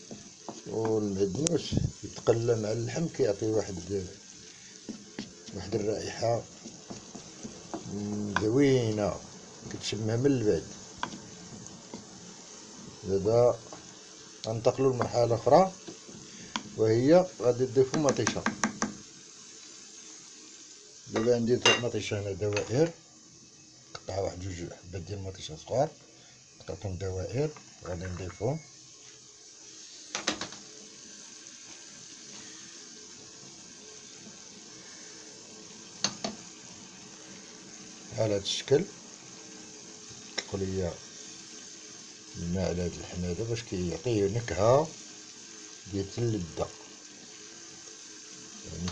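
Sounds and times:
wooden spatula stirring: 0:00.0 - 0:19.0
food sizzling in a pan: 0:00.0 - 0:48.9.

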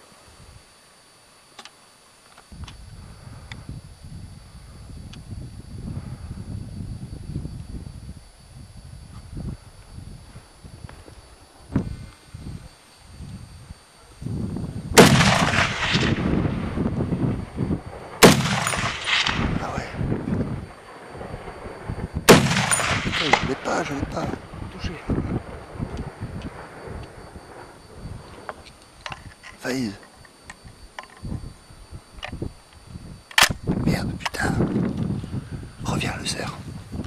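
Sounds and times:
low rumble on microphone: 0:02.5 - 0:29.5, 0:30.6 - 0:37.0
echo rolling across valley: 0:13.4 - 0:37.0
rifle shots: 0:15.0 - 0:16.7, 0:18.1 - 0:20.0, 0:22.2 - 0:24.3.

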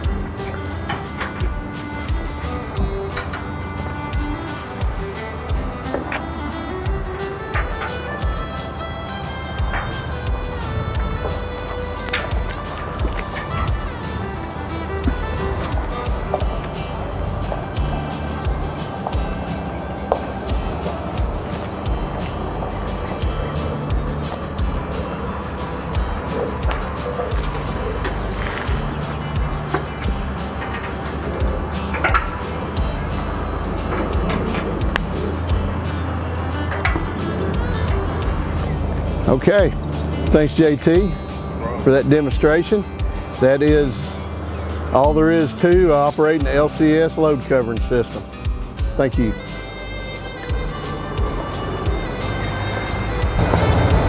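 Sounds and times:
background music with low bass: 0:00.0 - 0:54.0.

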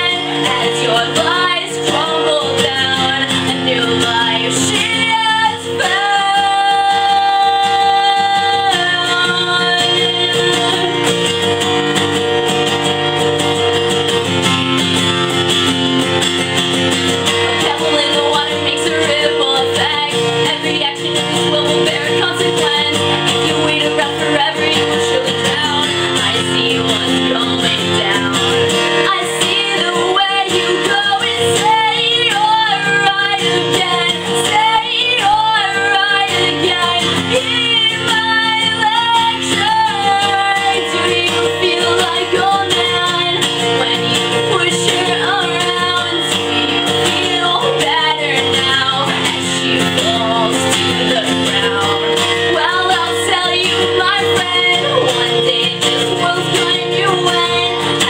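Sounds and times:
person singing: 0:00.0 - 0:12.4, 0:17.2 - 0:58.0
acoustic guitar strumming: 0:00.0 - 0:58.0.

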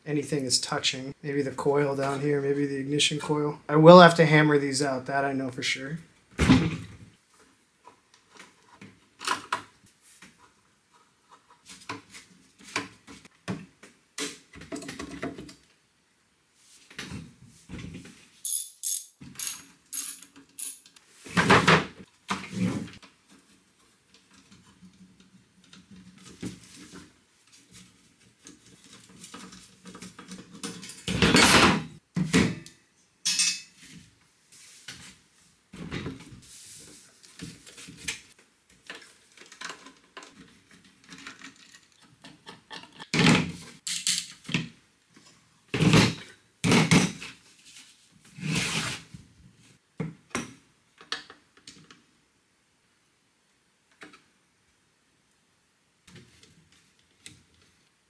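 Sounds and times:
screwdrivers clicking on metal: 0:18.4 - 0:21.0.

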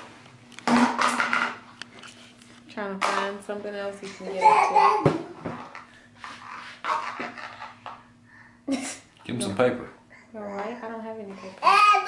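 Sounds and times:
faint steady hum: 0:00.0 - 0:12.0
plastic wastebasket knocking on floor: 0:05.0 - 0:05.8.

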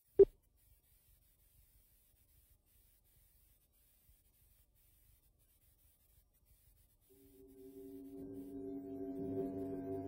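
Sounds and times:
film soundtrack hiss and hum: 0:00.0 - 0:10.0.

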